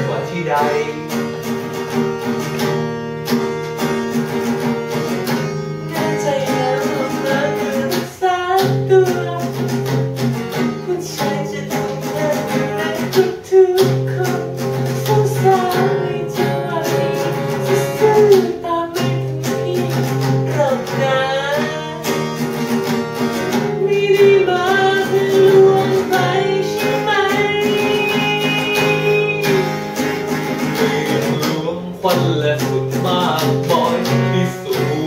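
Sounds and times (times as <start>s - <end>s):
man singing: 0.0s - 1.3s, 5.9s - 10.0s, 10.6s - 22.4s, 23.4s - 35.0s
acoustic guitars strumming: 0.0s - 35.0s
woman singing: 5.6s - 22.7s, 23.4s - 35.0s.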